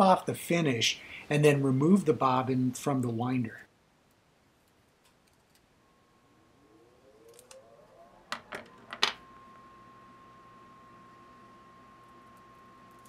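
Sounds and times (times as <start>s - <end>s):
small clicks and handling noises: 4.1s - 5.6s
faint rising whine: 5.3s - 13.0s.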